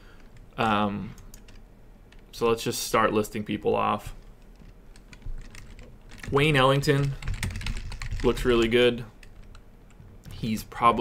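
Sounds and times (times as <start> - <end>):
keyboard typing: 1.2 - 2.3, 4.4 - 10.0.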